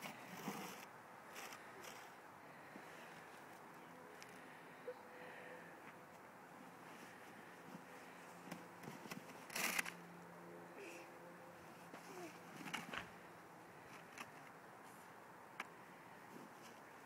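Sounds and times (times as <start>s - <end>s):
plastic shovel scraping snow: 0.0s - 2.1s, 8.9s - 9.9s
faint steady hum: 0.0s - 17.0s.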